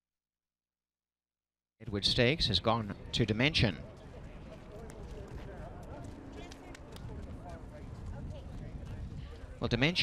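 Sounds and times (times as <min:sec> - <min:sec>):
people talking outdoors: 0:01.8 - 0:10.0.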